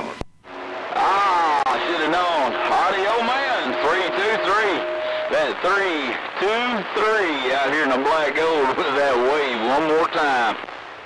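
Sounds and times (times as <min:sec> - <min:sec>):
steady whistle tone: 0:00.5 - 0:06.4.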